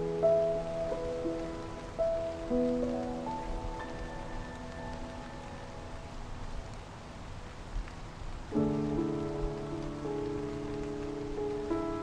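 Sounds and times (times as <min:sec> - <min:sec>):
soft slow piano improvisation: 0:00.0 - 0:12.0
steady rain: 0:00.0 - 0:12.0.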